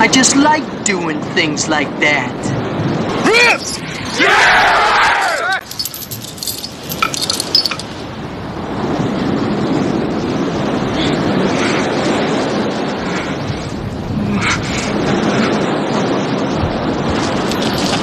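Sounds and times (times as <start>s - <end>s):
metallic clinks: 5.6s - 8.0s, 17.4s - 18.0s
ocean surf breaking: 7.9s - 18.0s.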